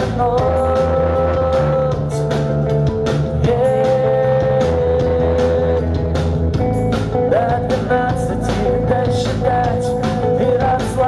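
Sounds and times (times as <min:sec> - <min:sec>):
man singing long notes: 0:00.0 - 0:02.5, 0:03.3 - 0:06.3, 0:07.3 - 0:11.0
live rock band: 0:00.0 - 0:11.0.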